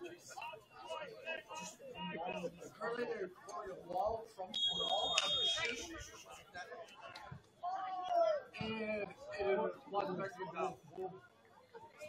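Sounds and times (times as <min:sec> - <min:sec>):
referee's whistle blast: 0:04.6 - 0:05.8.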